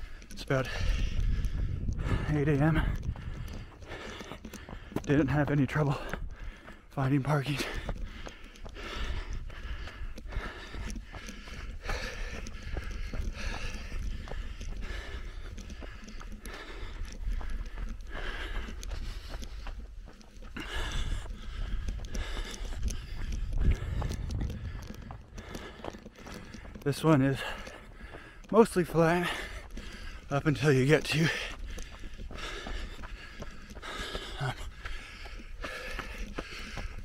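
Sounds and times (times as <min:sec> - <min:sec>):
running footsteps on dirt trail: 0:00.0 - 0:37.0.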